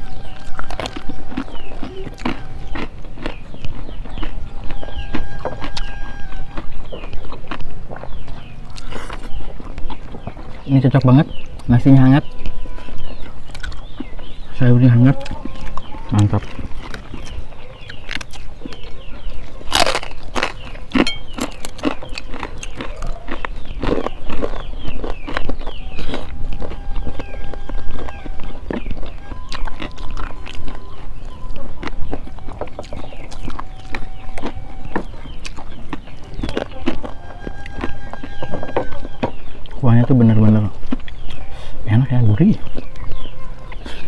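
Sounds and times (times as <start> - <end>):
chewing and crunching: 0.0 - 44.0.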